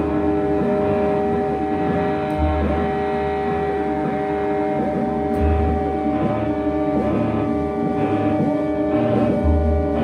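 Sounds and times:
instrumental drone music: 0.0 - 10.0
low bass notes: 0.0 - 10.0.

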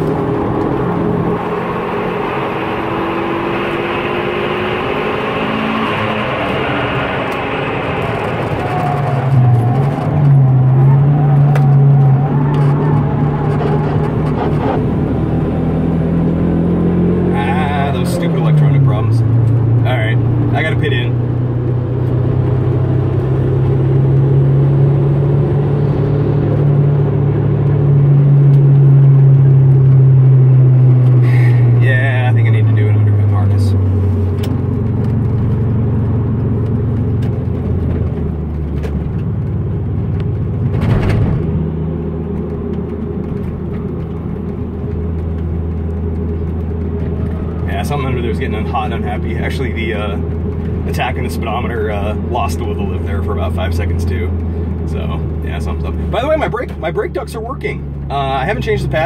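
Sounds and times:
car engine under hard driving: 0.0 - 59.0.

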